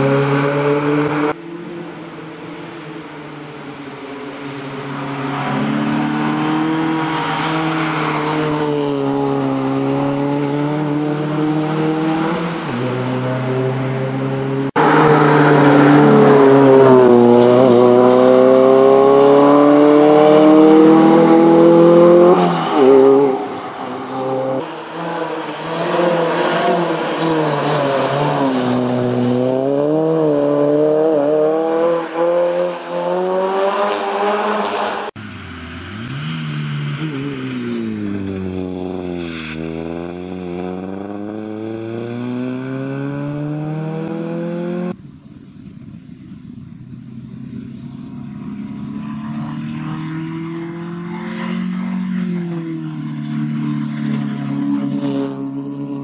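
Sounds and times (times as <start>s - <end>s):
car engine revving: 0.0s - 3.1s, 4.4s - 56.0s.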